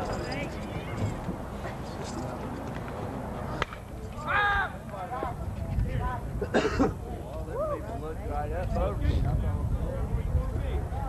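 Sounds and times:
faint crowd noise: 0.0s - 11.0s
baseball bat hitting ball: 3.6s - 3.9s.

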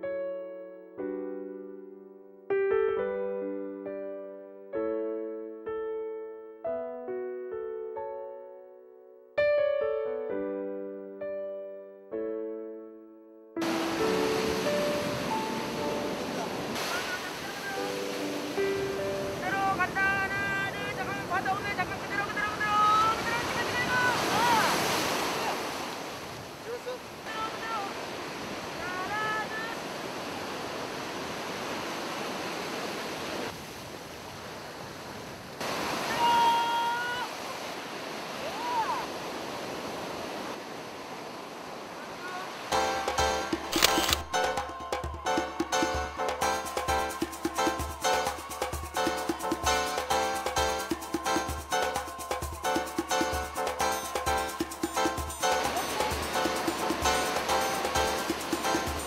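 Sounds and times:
ocean surf on a beach: 13.6s - 59.0s
wind on microphone: 13.8s - 16.8s
person calling out: 19.5s - 24.8s, 36.0s - 37.4s, 38.4s - 39.1s.

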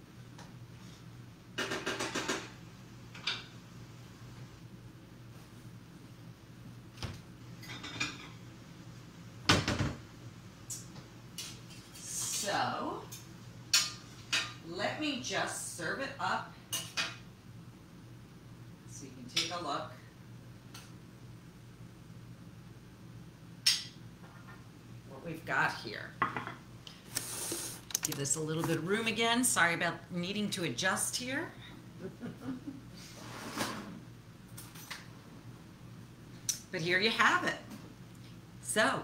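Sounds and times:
steady low hum: 2.4s - 39.0s.

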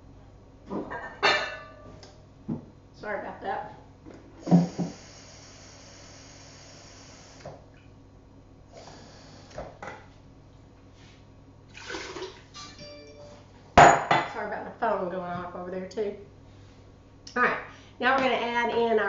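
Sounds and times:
phone electronic tones: 12.8s - 13.5s
kitchenware knocks and clinks: 13.8s - 14.4s.

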